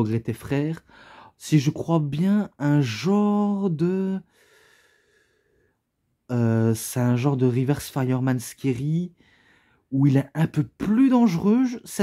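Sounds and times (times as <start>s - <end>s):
faint breath: 0.8s - 1.4s, 4.2s - 5.9s, 9.2s - 9.9s.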